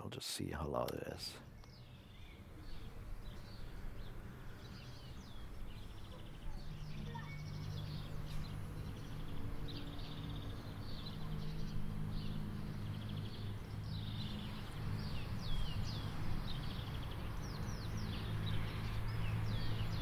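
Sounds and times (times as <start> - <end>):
birds chirping and twittering: 0.0 - 20.0.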